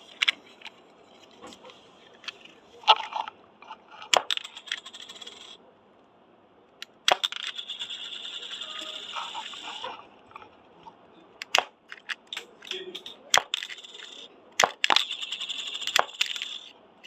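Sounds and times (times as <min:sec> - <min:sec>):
plastic disc rattling on hard surface: 0:03.9 - 0:05.6, 0:06.8 - 0:10.5, 0:11.4 - 0:16.7
disc-shooter toy snapping: 0:04.1 - 0:04.8, 0:06.8 - 0:07.5, 0:11.4 - 0:13.8, 0:14.6 - 0:16.6.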